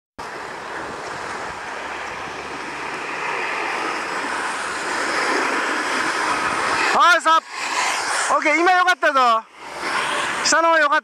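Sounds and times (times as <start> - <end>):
skis sliding on dry-slope mat: 0.2 - 10.8.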